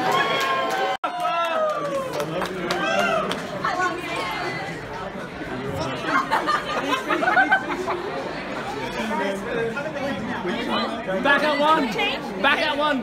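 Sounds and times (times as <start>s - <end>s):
group chatter: 1.4s - 13.0s.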